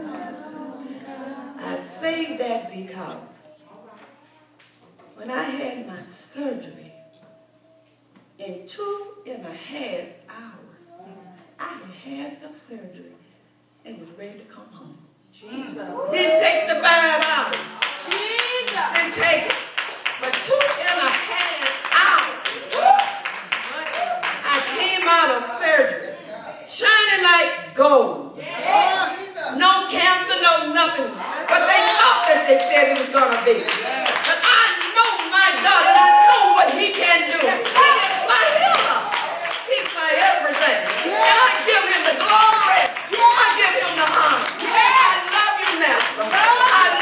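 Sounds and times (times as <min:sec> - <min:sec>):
woman speaking through microphone: 0:00.0 - 0:03.7, 0:05.1 - 0:07.0, 0:29.6 - 0:39.1
woman's raised voice: 0:15.5 - 0:17.2, 0:31.5 - 0:47.0
hand clapping: 0:17.2 - 0:24.8
hands clapping: 0:17.2 - 0:24.8, 0:36.6 - 0:47.0.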